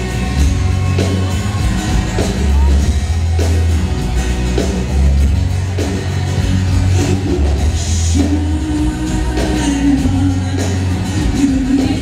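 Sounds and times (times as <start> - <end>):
acoustic guitar: 0.0 - 12.0
drum kit: 0.0 - 12.0
heavy bass: 0.0 - 12.0.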